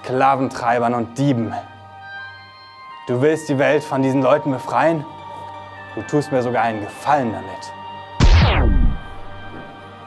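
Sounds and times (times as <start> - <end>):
film background score: 0.0 - 10.0
boom with falling pitched sweep: 8.2 - 9.8.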